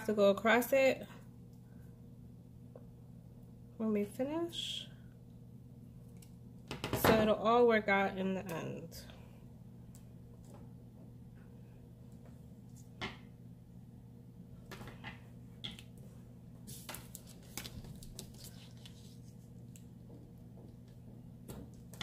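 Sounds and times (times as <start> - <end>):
faint low hum: 0.0 - 22.0
tape and paper clicks and rustles: 16.7 - 19.1.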